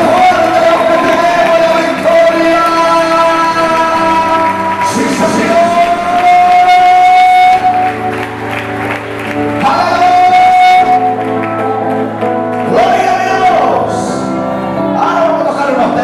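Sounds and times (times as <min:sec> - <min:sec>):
man singing slow worship song: 0:00.0 - 0:11.4, 0:12.6 - 0:14.3
sustained instrumental chords: 0:00.0 - 0:16.0.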